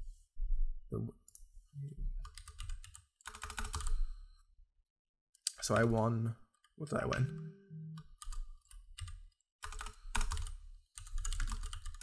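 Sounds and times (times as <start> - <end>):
typing on computer keyboard: 2.3 - 4.0, 8.2 - 12.0.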